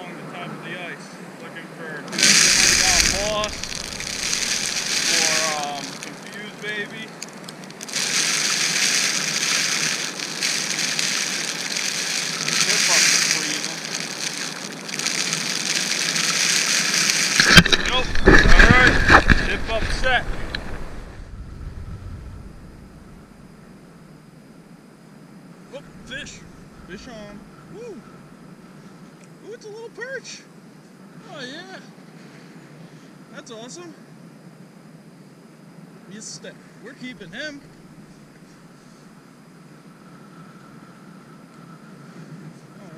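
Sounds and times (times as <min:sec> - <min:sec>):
wind gusting: 0:02.0 - 0:24.2, 0:25.4 - 0:28.8
wind buffeting microphone: 0:02.1 - 0:06.3, 0:17.4 - 0:24.1.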